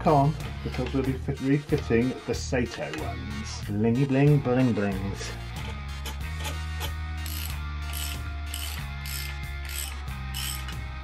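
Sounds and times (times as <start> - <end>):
background music with bass: 0.0 - 11.0
socket ratchet clicking: 6.0 - 10.8.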